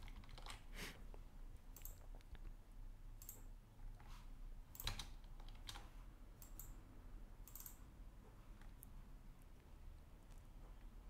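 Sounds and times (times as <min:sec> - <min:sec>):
computer keyboard and mouse clicks: 0:00.0 - 0:00.7, 0:01.7 - 0:02.4, 0:03.2 - 0:04.1, 0:04.7 - 0:06.8, 0:07.4 - 0:07.8.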